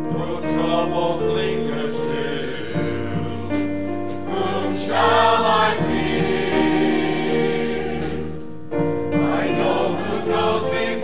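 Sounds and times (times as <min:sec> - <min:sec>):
choir singing sustained chords: 0:00.0 - 0:11.0.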